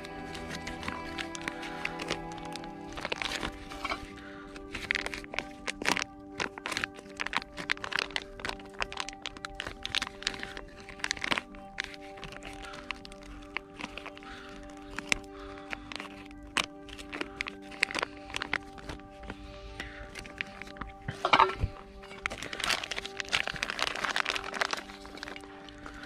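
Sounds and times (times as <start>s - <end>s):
background music: 0.0s - 26.0s
plastic packet crackling: 0.0s - 26.0s.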